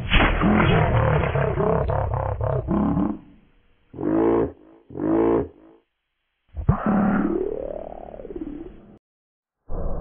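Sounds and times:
deep croaking gliding tone: 0.3 - 5.7.

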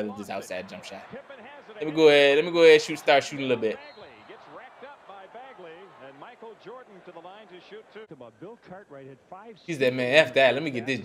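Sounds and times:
commentator talking: 0.0 - 11.0
surrounding reaction talk: 0.0 - 11.0.

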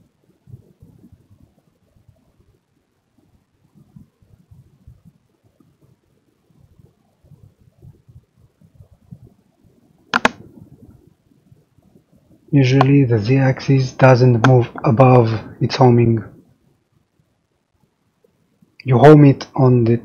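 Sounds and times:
sharp click: 10.1 - 10.5, 12.8 - 13.0.

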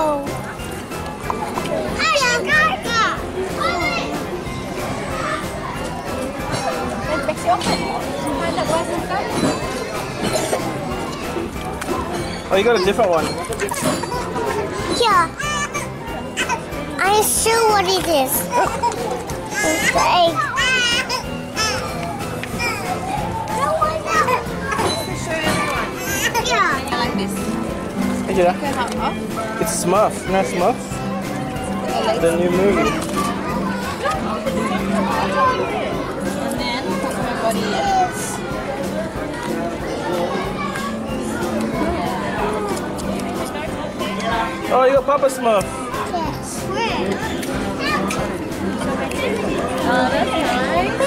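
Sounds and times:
background music: 0.0 - 51.0
children chattering: 0.0 - 51.0
child speaking: 14.9 - 15.5, 17.0 - 18.4, 19.6 - 21.1, 47.8 - 48.1.

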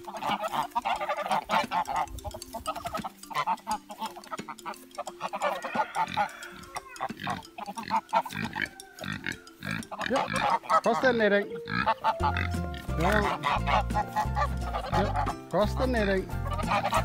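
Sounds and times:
geese chattering: 0.0 - 17.0.

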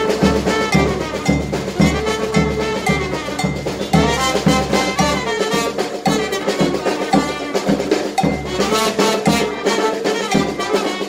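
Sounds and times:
bass drum beat: 0.0 - 11.0
brass band playing: 0.0 - 11.0
snare drum: 0.0 - 11.0.

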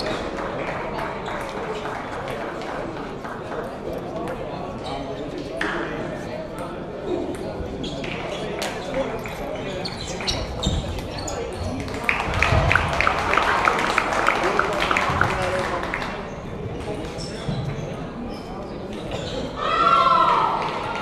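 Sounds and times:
murmur of voices: 0.0 - 21.0.

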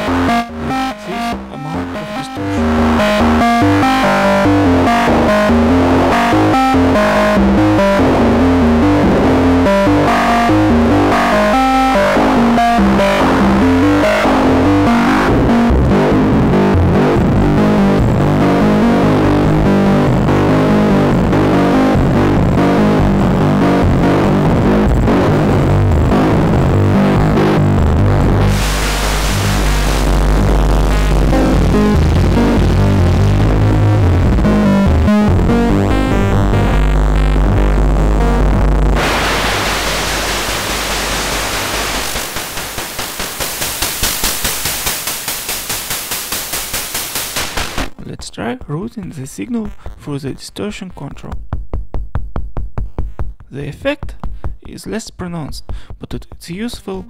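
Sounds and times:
short pitched synth notes: 0.0 - 48.0
bassy hiss: 28.4 - 33.4, 39.0 - 47.9.

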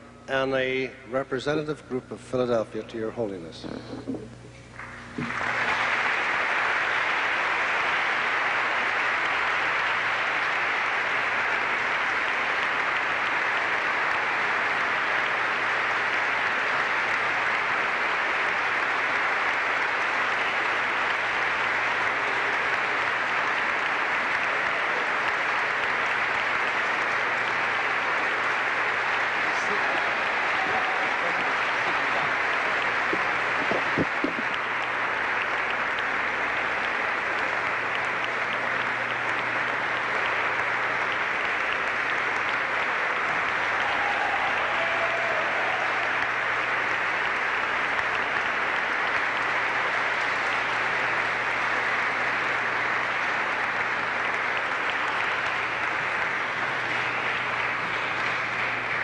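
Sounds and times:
large crowd applauding: 4.7 - 59.0.

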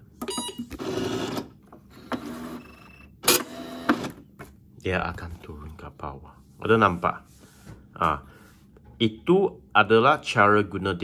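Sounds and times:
time recorder clicking and whirring: 0.2 - 4.2.

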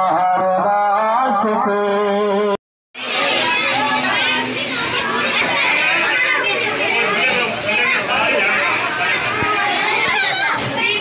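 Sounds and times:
children talking and calling out: 3.0 - 11.0.

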